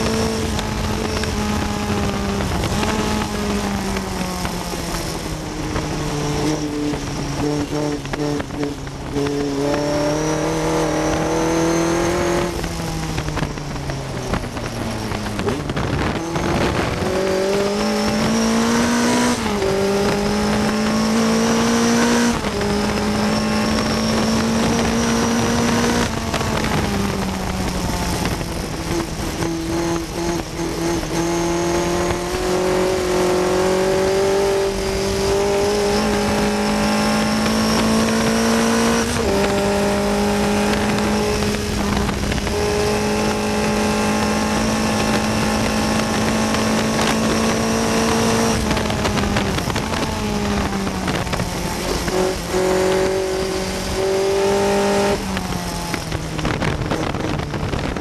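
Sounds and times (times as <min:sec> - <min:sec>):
racing car engine at high revs: 0:00.0 - 0:58.0
wind and road noise: 0:00.0 - 0:58.0.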